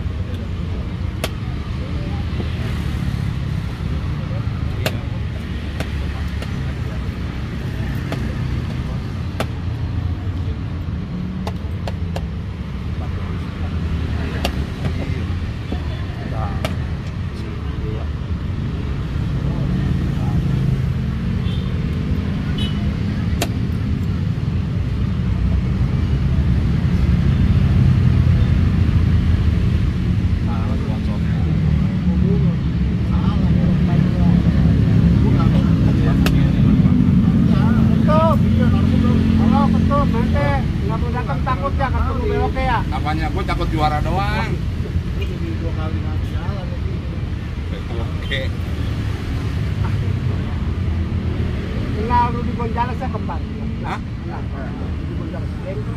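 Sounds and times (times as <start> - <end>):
voices talking: 0.0 - 24.4, 30.3 - 55.9.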